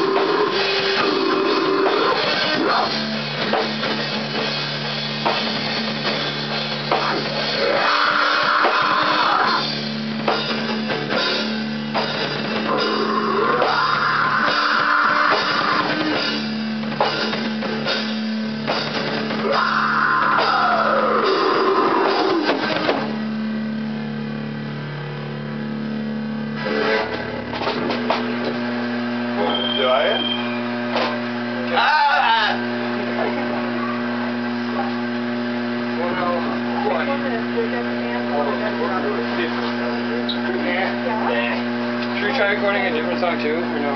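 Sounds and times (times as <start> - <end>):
amplifier hum: 0.0 - 43.9
rock band playing: 0.0 - 43.9.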